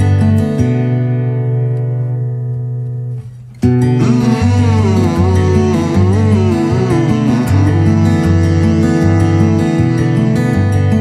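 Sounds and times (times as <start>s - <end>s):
held music chord: 3.9s - 10.6s.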